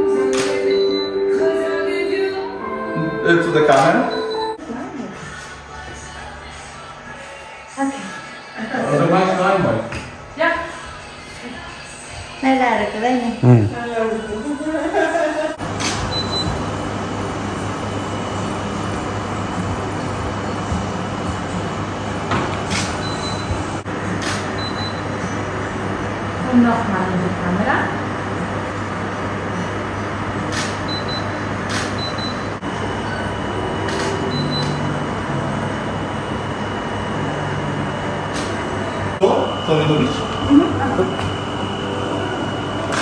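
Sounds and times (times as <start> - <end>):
background music with held notes: 0.0 - 4.6
steady low hum: 0.0 - 43.0
person speaking: 13.4 - 13.8.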